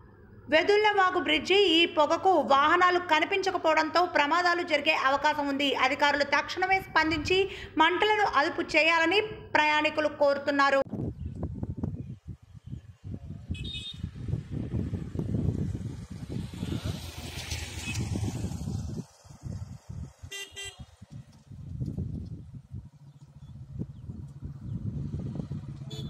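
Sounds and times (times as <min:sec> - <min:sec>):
road traffic rumble: 0:10.9 - 0:26.0
vehicle horn toots: 0:13.5 - 0:14.1, 0:20.3 - 0:21.0
motorcycle engine: 0:13.5 - 0:26.0.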